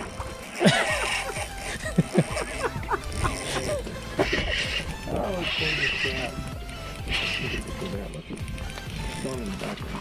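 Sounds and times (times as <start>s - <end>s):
seabirds calling: 0.0s - 8.2s.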